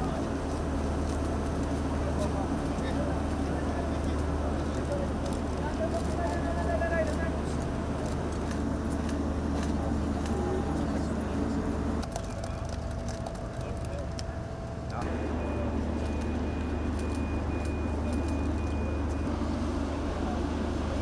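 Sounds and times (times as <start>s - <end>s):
people talking: 0.0s - 21.0s
faint beeping: 15.0s - 19.3s.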